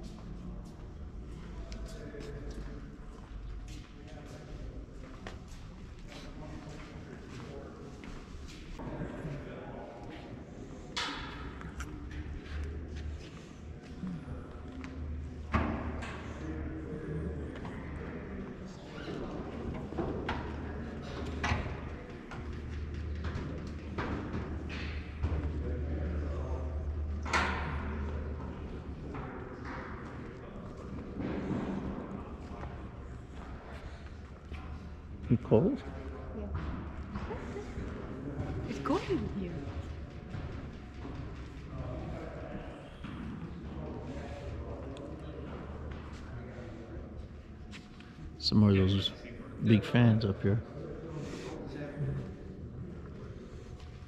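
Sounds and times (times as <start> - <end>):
faint voices: 0.0 - 54.0.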